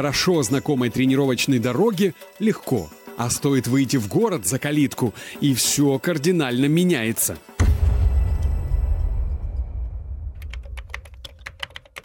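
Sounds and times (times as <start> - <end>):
computer keyboard typing: 10.4 - 12.0.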